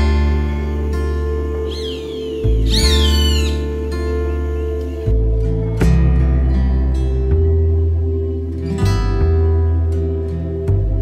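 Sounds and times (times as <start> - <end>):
music of held low tones: 0.0 - 11.0
hawk call falling in pitch: 1.7 - 3.7.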